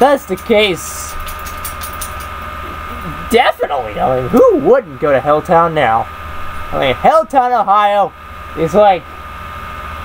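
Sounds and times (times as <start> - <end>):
steady low hum: 0.0 - 10.0
thin high whine: 0.0 - 10.0.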